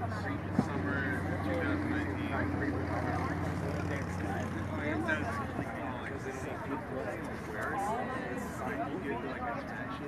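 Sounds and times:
boat engine humming: 0.0s - 5.0s
people talking: 0.0s - 10.0s.

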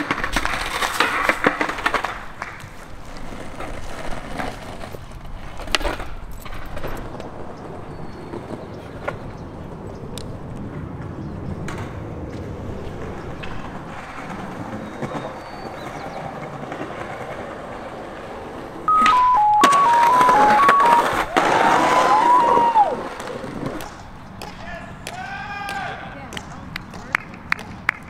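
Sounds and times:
outdoor background noise: 0.0s - 28.0s
short beeping tones: 18.9s - 21.2s
swooping tone: 18.9s - 21.3s.

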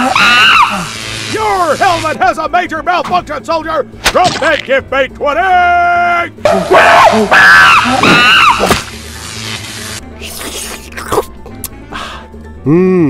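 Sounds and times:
character screeching and wailing: 0.0s - 1.6s, 6.5s - 8.8s
crackling sparks: 0.0s - 2.2s, 7.8s - 10.3s.

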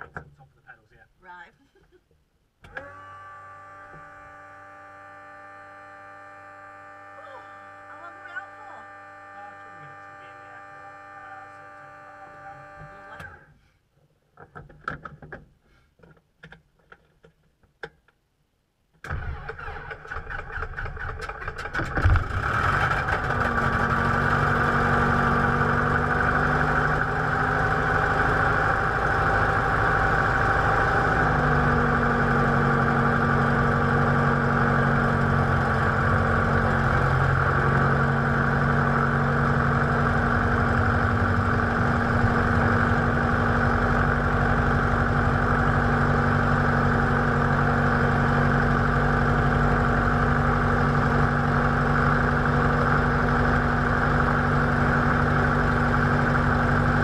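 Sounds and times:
piston engine starting and idling: 19.0s - 57.0s.

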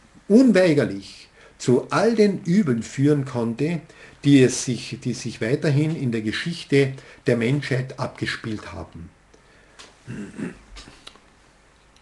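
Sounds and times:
man coughing: 10.1s - 10.7s.

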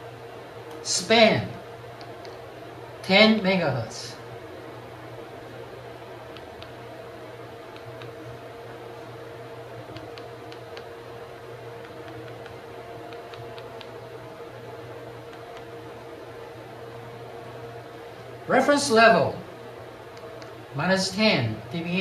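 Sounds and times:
background hum and hiss: 0.0s - 22.0s.

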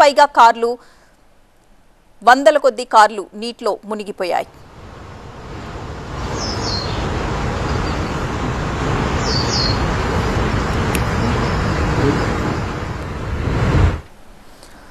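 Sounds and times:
steady rushing hiss: 4.0s - 14.9s
small bird chirping: 6.3s - 8.1s, 9.1s - 9.9s.

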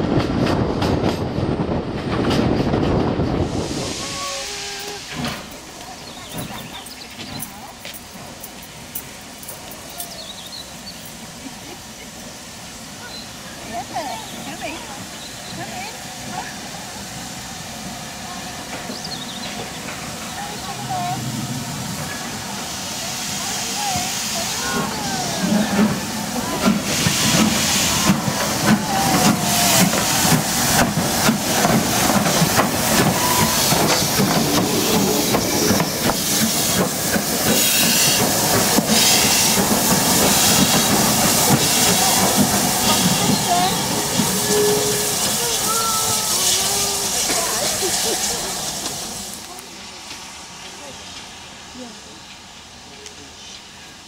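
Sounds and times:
steam locomotive hissing: 0.0s - 54.0s
locomotive wheels knocking and clanking: 4.8s - 10.3s, 25.4s - 47.9s.

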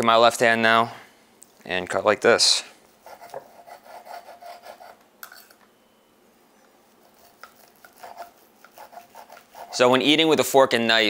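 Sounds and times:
knife sawing through steak: 3.0s - 5.0s, 7.0s - 9.9s.

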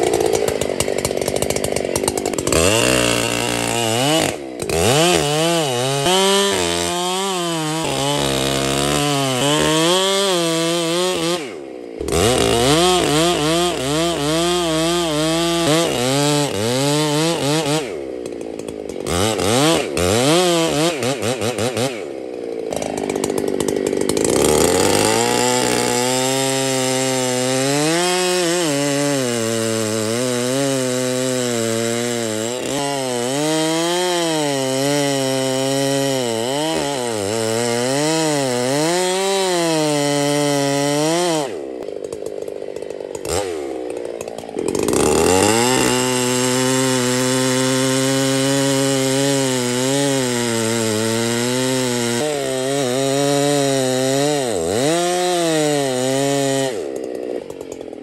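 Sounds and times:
chainsaw cutting wood: 0.0s - 58.0s.

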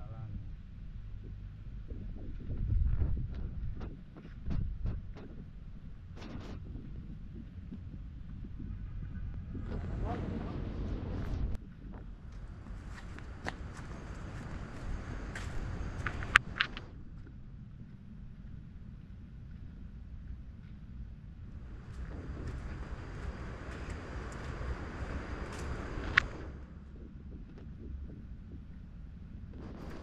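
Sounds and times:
wind on microphone: 0.2s - 30.0s
footsteps on gravel path: 11.7s - 17.3s, 21.4s - 26.6s.

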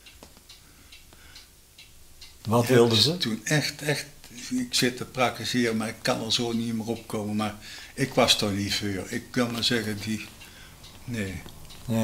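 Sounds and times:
faint ticks: 0.0s - 2.6s, 4.2s - 12.0s.

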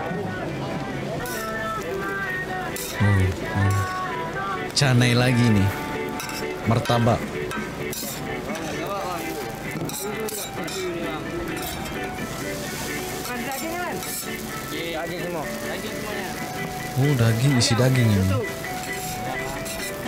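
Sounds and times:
background music: 0.0s - 20.0s
voices: 0.0s - 20.0s
food sizzling on griddle: 0.4s - 20.0s
metal spatula scraping: 6.2s - 14.7s, 17.7s - 20.0s.

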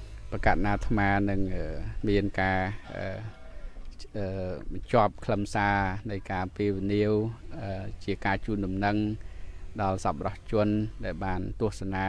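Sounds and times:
low steady hum: 0.0s - 12.0s
man talking into microphone: 0.3s - 9.2s, 9.8s - 12.0s.

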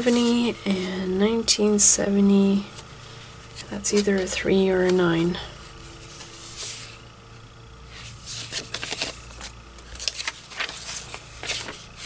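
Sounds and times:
paper sheets rustling: 3.5s - 5.2s, 5.8s - 7.0s, 7.9s - 12.0s.

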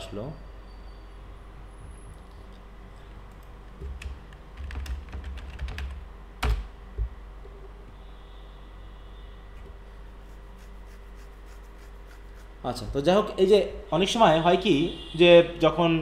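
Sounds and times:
steady low hum: 0.0s - 13.9s.

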